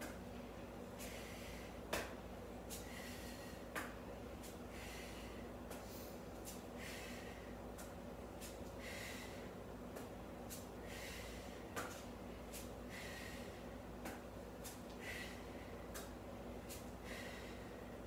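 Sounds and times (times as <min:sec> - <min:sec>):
steady low hum: 0:00.0 - 0:18.0
woman breathing hard: 0:00.9 - 0:01.9, 0:02.7 - 0:03.9, 0:04.5 - 0:07.8, 0:08.6 - 0:09.8, 0:10.6 - 0:13.9, 0:14.9 - 0:18.0.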